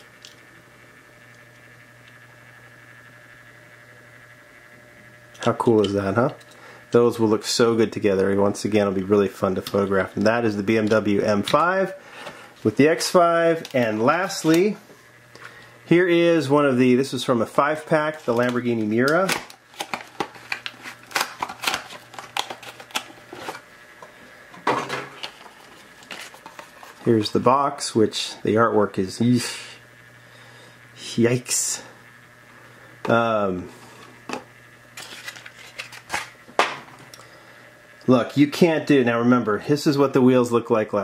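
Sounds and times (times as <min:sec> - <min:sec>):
electrical hum: 0:00.0 - 0:41.0
objects rustling while handled: 0:24.6 - 0:27.1.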